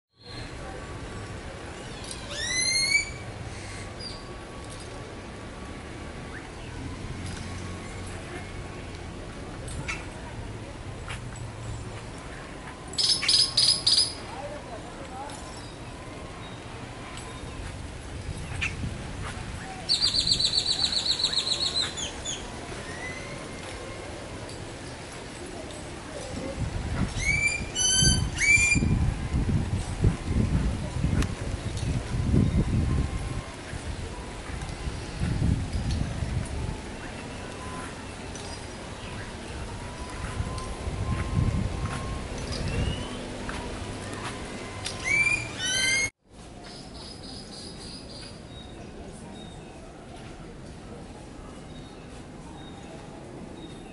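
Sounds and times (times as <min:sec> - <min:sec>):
bird singing high trill: 0:42.5 - 0:43.3, 0:45.0 - 0:46.1.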